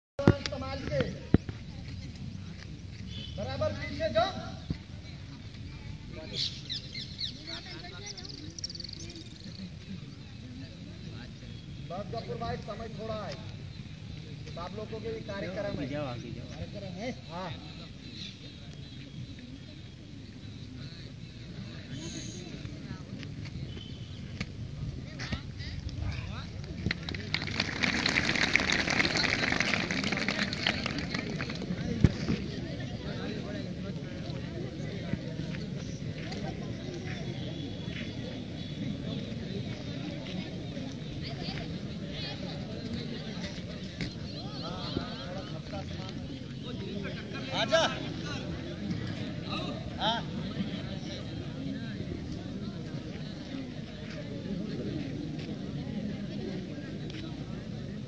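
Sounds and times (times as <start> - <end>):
children talking: 4.9 - 9.7
children clapping: 26.7 - 31.9.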